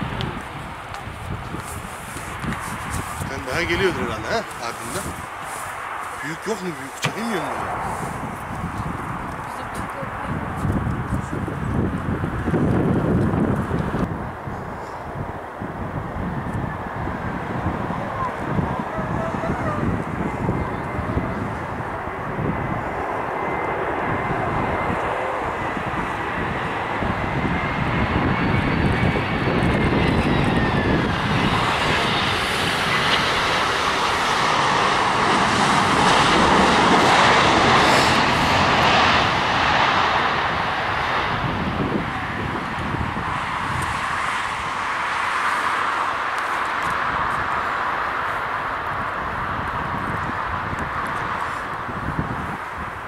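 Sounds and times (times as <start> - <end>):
high engine whine: 0.0 - 53.0
jet engine roar: 0.0 - 53.0.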